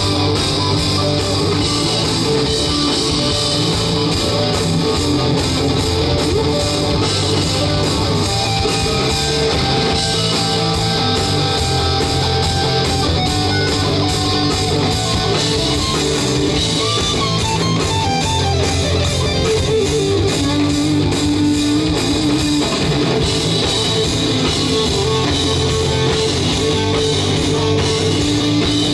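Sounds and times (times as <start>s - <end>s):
bass guitar: 0.0s - 28.9s
drum kit: 0.0s - 28.9s
electric guitars: 0.0s - 28.9s
live hard rock band playing: 0.0s - 28.9s.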